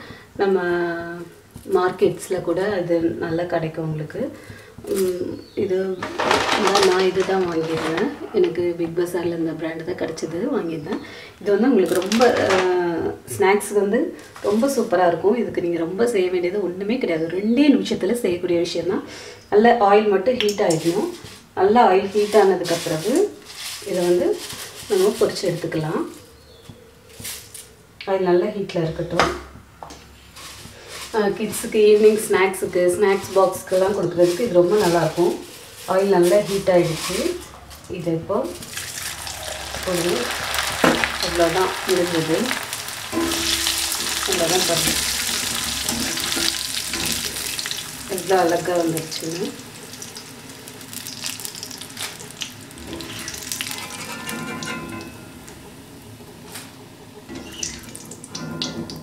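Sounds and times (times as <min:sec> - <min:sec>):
kitchen utensils clinking: 0:04.9 - 0:09.1, 0:11.8 - 0:12.8, 0:32.9 - 0:55.9
metal ladle clinking: 0:38.6 - 0:48.0, 0:52.8 - 0:55.6
chips sizzling in hot oil: 0:38.6 - 0:55.6, 0:57.4 - 0:58.4.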